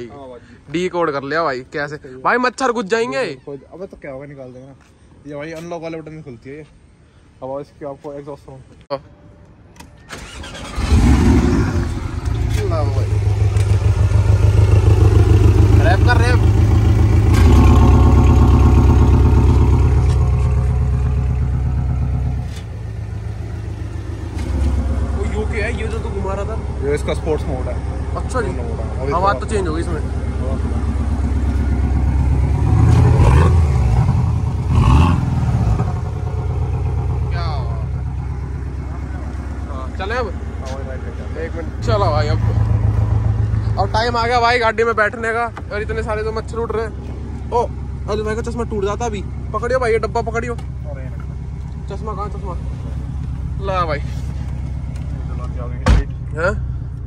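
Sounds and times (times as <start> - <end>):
car engine starting and idling: 9.8 - 57.0
engine throttle blips: 10.1 - 57.0.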